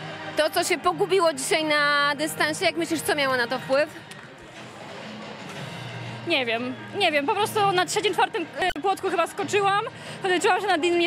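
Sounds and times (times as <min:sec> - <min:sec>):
faint music: 0:00.0 - 0:11.0
indoor athletics hall background noise: 0:03.9 - 0:06.8.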